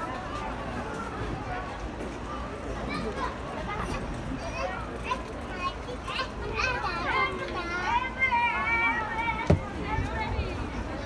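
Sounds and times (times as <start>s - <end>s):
young children chattering: 0.0s - 11.0s
lively child's voice: 2.9s - 9.6s.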